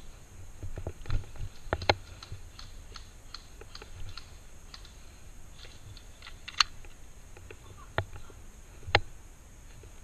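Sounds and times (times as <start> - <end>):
light clicks and ticks: 1.7 - 5.0.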